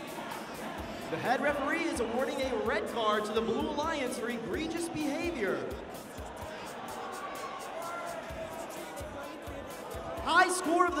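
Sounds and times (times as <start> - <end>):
faint background music: 0.0 - 11.0
murmur of voices in a gymnasium: 0.0 - 11.0.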